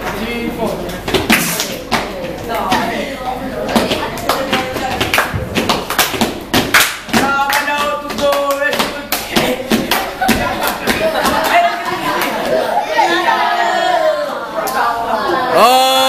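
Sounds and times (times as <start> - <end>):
children clapping: 3.9 - 12.6
children singing: 8.0 - 15.7.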